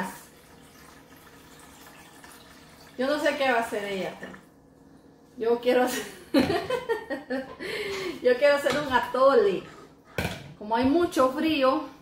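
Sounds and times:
water pouring into a metal pot: 0.0s - 4.5s.

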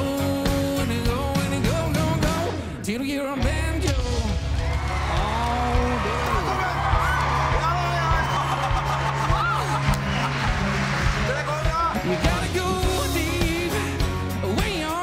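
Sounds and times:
live band music: 0.0s - 15.0s
people cheering and shouting: 4.0s - 15.0s.

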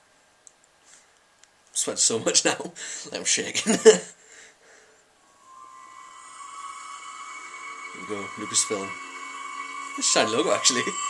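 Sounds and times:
soft sustained tone: 5.2s - 11.0s.

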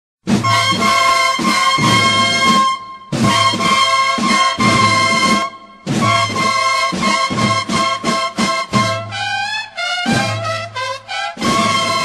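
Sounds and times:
marching drums: 0.2s - 12.0s
bugles holding long chords: 0.3s - 12.0s.

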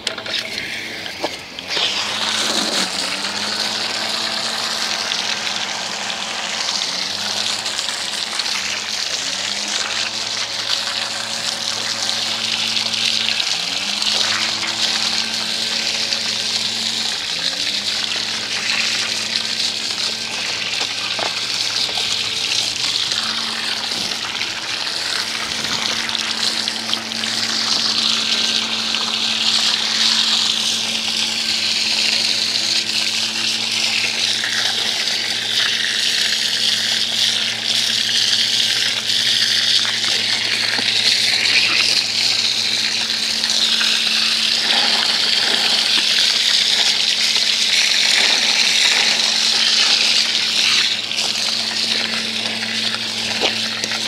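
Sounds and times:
water splashing on bike: 0.0s - 54.0s
water spraying from hose: 0.0s - 54.0s
steady low hum: 2.4s - 54.0s.

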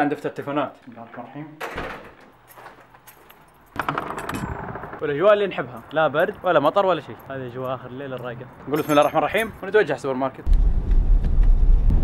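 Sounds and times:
door opening: 1.6s - 5.1s
keys jangling: 2.2s - 4.6s, 5.6s - 9.8s.

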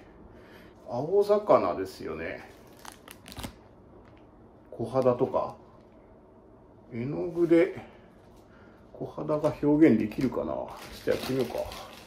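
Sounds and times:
plastic package crinkling: 2.5s - 4.2s, 10.0s - 12.0s.

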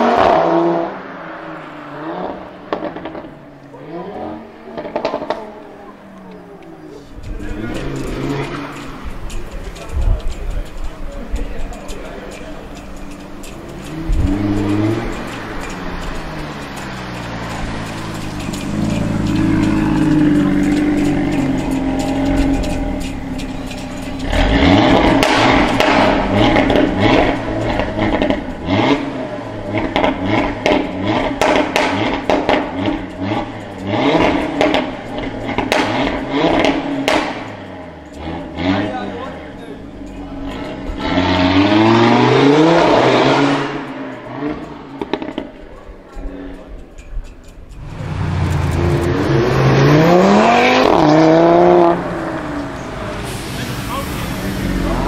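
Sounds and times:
car engine revving: 0.0s - 55.0s
exhaust crackles: 0.0s - 55.0s.

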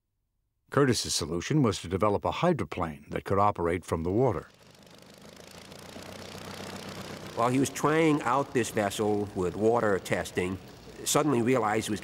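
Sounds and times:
propeller engine running: 4.4s - 12.0s.

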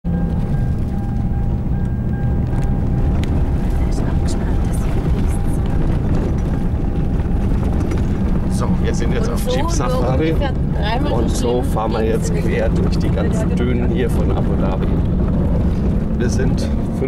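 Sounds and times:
engine and tyres rumbling: 0.0s - 17.0s
faint rattles: 2.1s - 10.8s.

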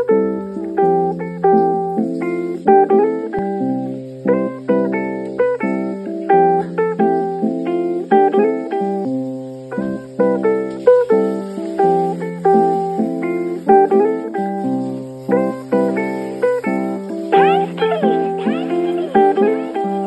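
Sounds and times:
plucked string melody: 0.0s - 20.0s.

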